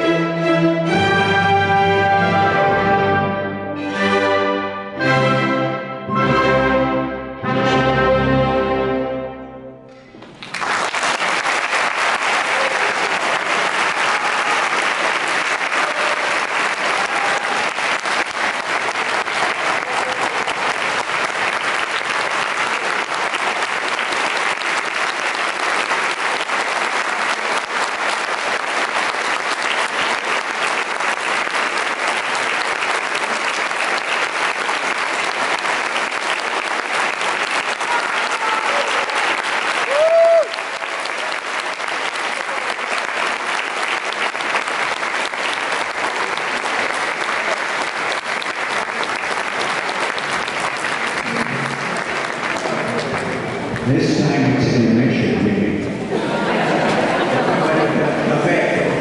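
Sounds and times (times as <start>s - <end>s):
audience applause: 10.0s - 59.0s.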